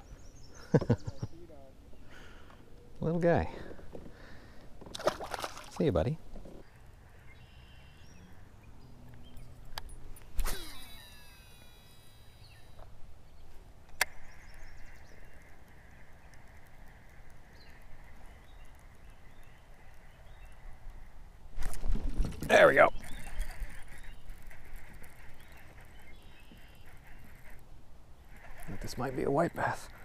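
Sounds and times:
fishing line running off spool: 9.9 - 12.8
fishing reel whirring: 10.2 - 12.8, 28.3 - 30.0
fishing rod whip: 10.3 - 11.4.

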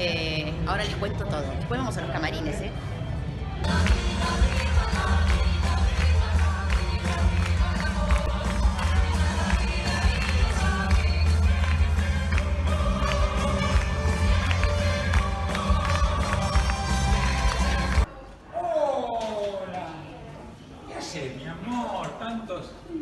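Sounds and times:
loud music with boomy bass beat: 3.6 - 18.1.

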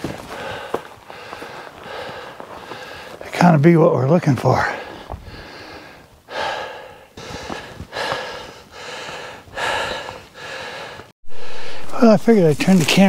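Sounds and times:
man breathing heavily: 0.0 - 3.3, 4.6 - 11.9.

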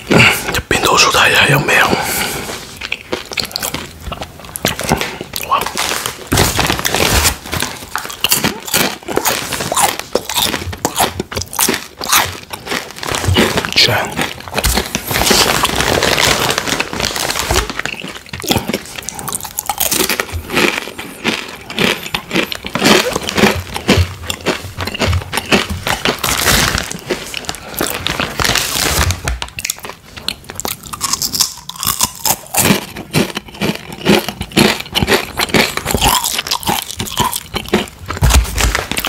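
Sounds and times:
chewing crunchy chips: 0.0 - 39.0
plastic snack bag crinkling: 0.4 - 39.0.

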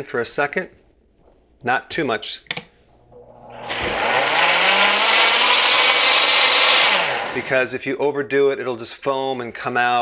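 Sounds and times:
blender motor running: 3.2 - 7.6.

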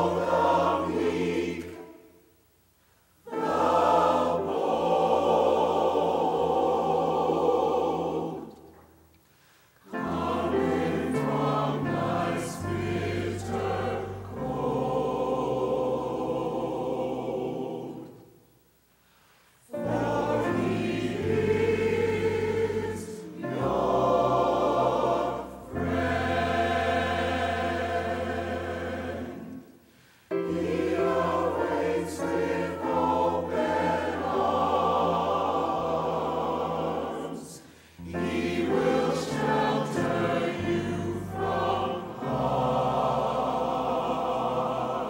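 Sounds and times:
church choir singing: 0.0 - 45.0.

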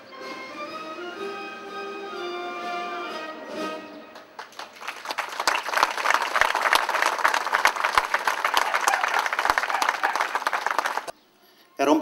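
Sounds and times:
crowd applauding: 4.1 - 11.1.

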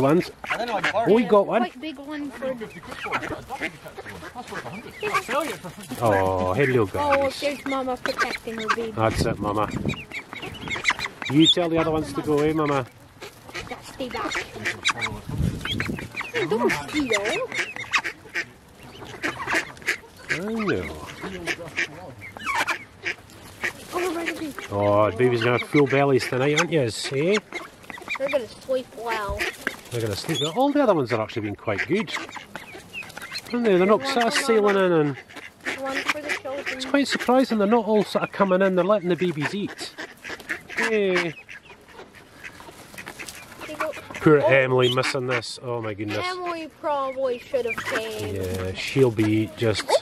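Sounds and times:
ducks quacking: 0.0 - 50.0.

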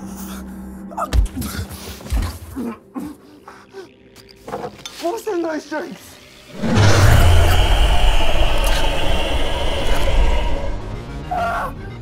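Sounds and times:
monstrous scream-roar: 6.5 - 11.8.

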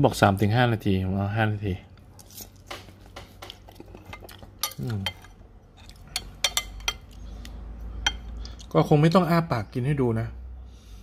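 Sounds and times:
spoon and fork clinking on bowl: 4.0 - 5.4, 6.1 - 7.2.

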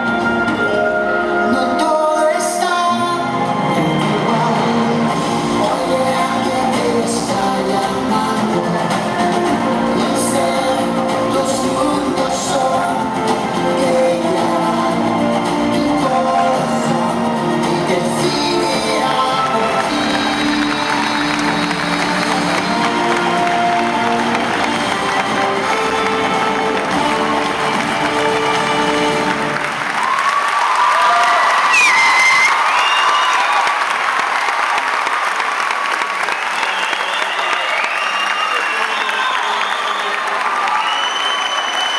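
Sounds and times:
audience applause and cheering: 0.0 - 41.9
stage show music: 0.0 - 41.9.

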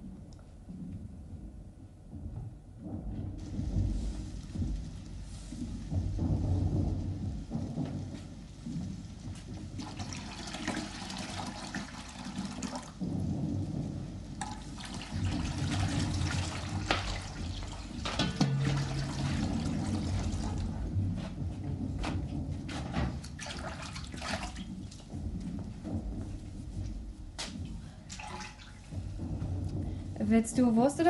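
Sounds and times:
distant artillery rumble: 0.7 - 9.9, 24.0 - 31.0
water pouring in a washbasin: 2.9 - 31.0.

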